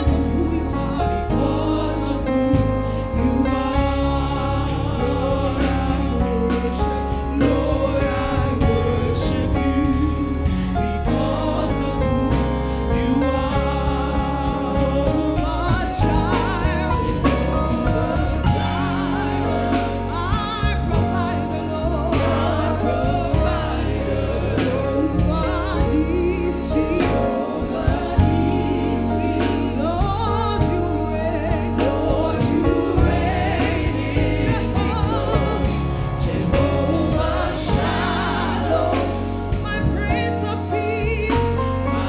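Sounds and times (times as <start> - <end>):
band of drums guitar and keyboard: 0.0 - 42.0
singers singing together: 0.0 - 42.0.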